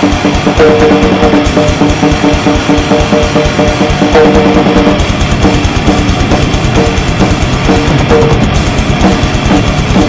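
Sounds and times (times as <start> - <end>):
distorted guitar riff: 0.0 - 10.0
fast hard drum kit: 0.0 - 10.0.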